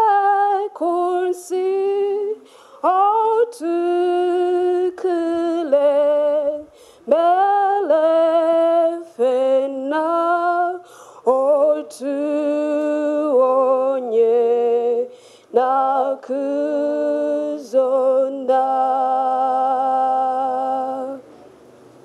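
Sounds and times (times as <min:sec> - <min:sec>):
woman singing unaccompanied: 0:00.0 - 0:21.3
breaths between phrases: 0:10.8 - 0:11.2.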